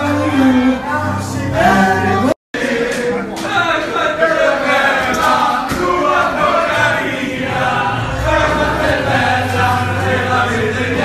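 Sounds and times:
diners singing in chorus: 0.0 - 11.0.

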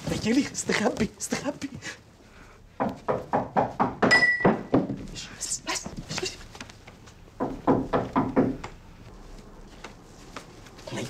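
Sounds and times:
knocking on a door: 2.8 - 5.1, 7.4 - 8.7.

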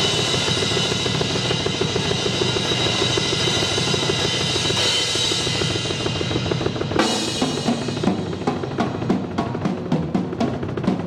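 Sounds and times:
ringing cymbals: 0.0 - 9.0
drum kit played fast: 0.0 - 11.0.

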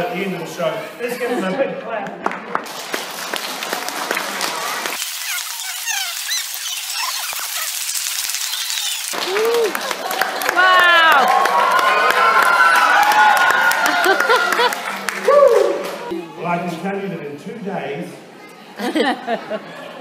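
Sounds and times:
children clapping: 2.0 - 16.1
balloon twisting squeaks: 4.9 - 9.2.

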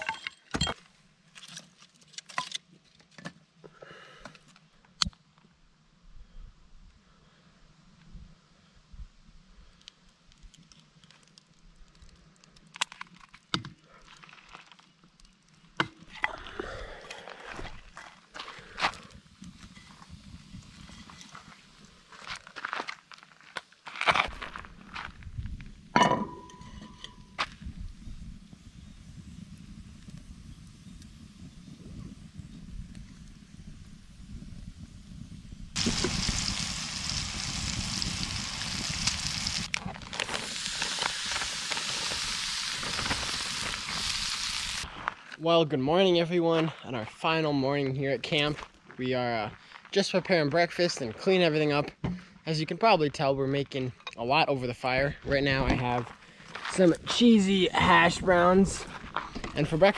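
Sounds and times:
fire crackling and popping: 9.3 - 45.4, 55.0 - 59.9
food sizzling in a skillet: 35.8 - 44.9.

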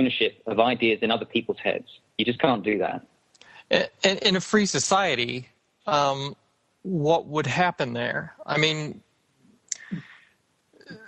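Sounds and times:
faint voice: 0.0 - 3.0, 3.7 - 6.3, 6.9 - 9.0
short breath: 3.4 - 3.8
mouth click: 9.7 - 10.1.

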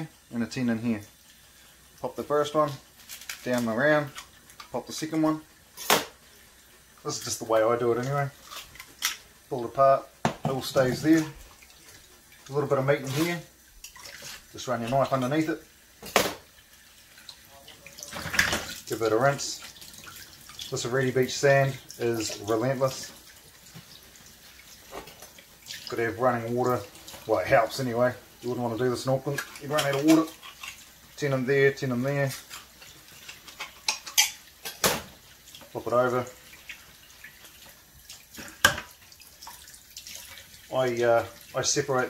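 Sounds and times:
tap water running into sink: 2.0 - 42.0.

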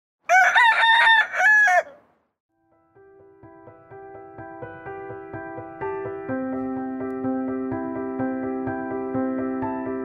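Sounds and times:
rooster crowing: 0.3 - 2.1.

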